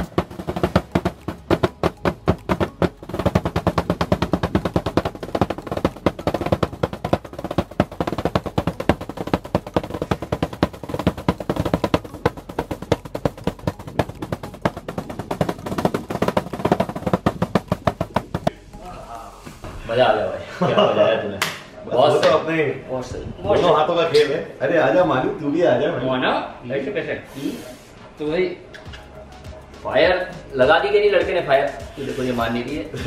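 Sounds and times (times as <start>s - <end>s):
rapid drum rolls: 0.0s - 18.5s.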